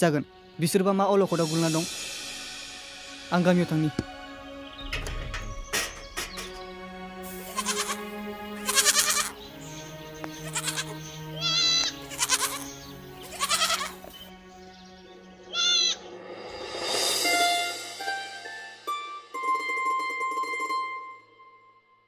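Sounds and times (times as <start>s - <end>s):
soft background music: 0.0s - 22.0s
goats bleating: 7.4s - 9.4s, 10.4s - 14.0s, 15.5s - 16.0s.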